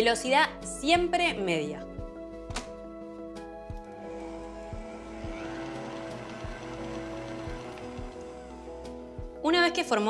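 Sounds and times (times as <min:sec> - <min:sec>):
background music with steady beat: 0:00.0 - 0:10.0
stand mixer whirring: 0:04.0 - 0:08.7.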